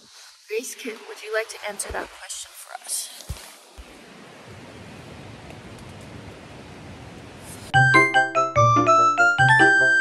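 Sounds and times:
static hiss: 0.0s - 7.8s.

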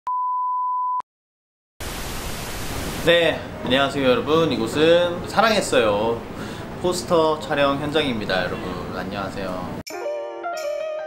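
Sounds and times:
tv static hiss: 1.8s - 4.3s.

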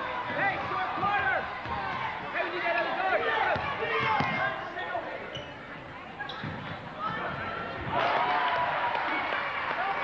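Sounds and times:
voices in a hall: 0.0s - 10.0s.

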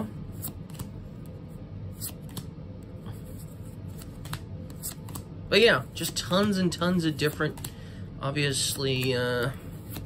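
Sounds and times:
cards flicking: 0.4s - 1.0s, 2.0s - 2.6s, 3.8s - 5.3s.

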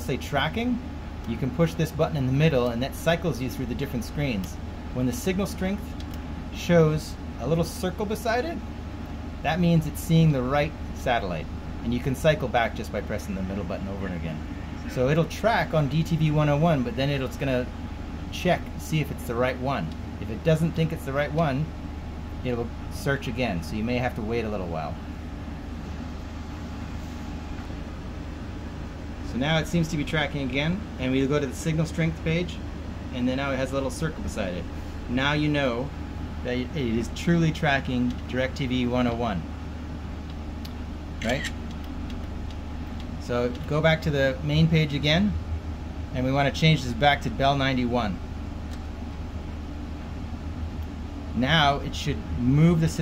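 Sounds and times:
low machinery hum: 0.0s - 53.0s.

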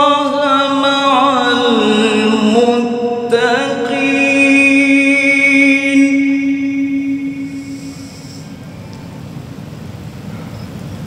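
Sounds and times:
man reciting through microphone: 0.0s - 8.6s.

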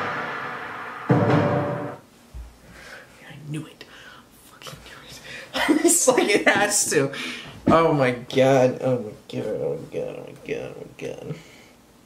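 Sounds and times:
man whispering: 3.0s - 5.5s.

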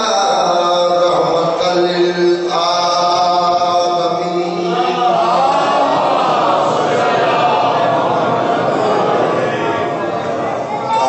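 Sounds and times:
man chanting through microphone: 0.0s - 11.0s.

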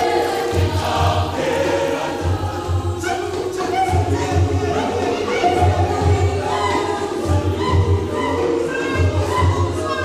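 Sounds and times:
youth choir singing: 0.0s - 10.0s.

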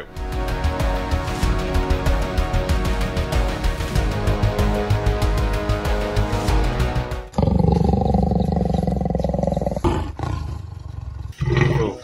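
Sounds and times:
background music: 0.0s - 10.8s
leopard growling: 7.3s - 12.0s.

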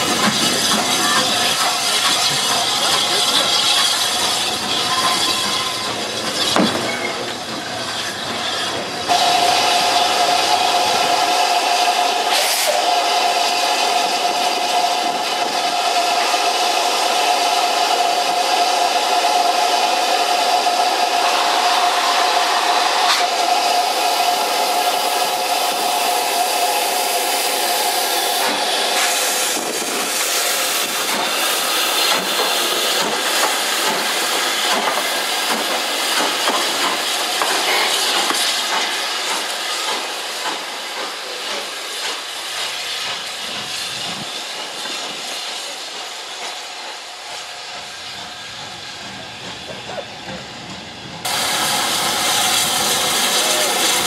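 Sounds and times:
steam locomotive hissing: 0.0s - 54.0s.

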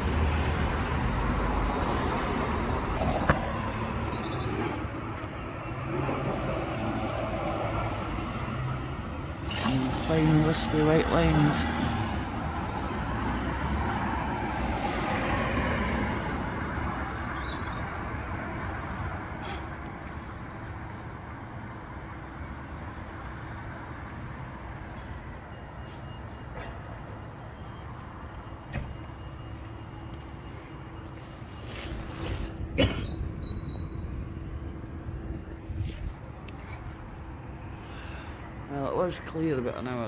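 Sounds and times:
vehicle passing: 0.0s - 20.6s.

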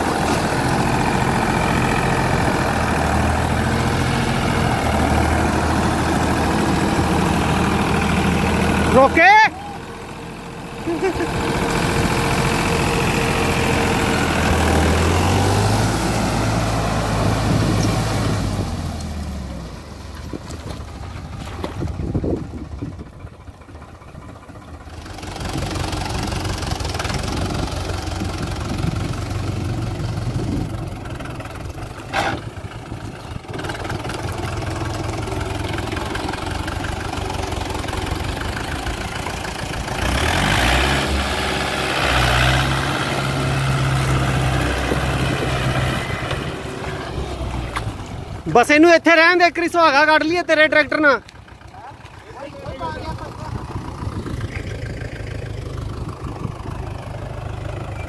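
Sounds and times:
diesel tractor engine under load: 0.0s - 58.0s.

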